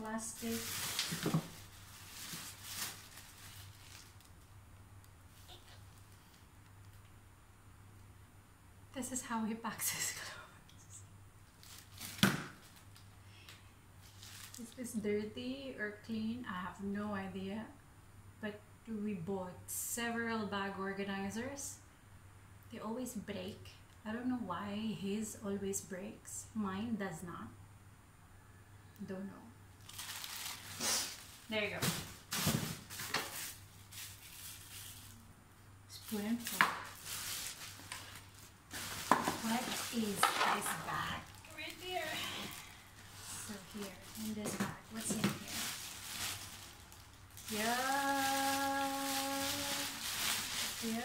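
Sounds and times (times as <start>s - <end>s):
plastic bag crackling: 0.0s - 4.5s, 11.5s - 13.0s, 14.0s - 14.8s, 29.8s - 35.3s, 35.9s - 51.0s
clothes being handled: 36.0s - 51.0s.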